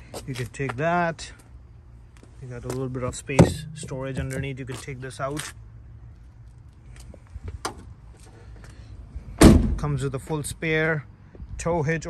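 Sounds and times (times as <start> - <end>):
car swing gate slamming shut: 3.4 - 4.4, 9.4 - 9.8.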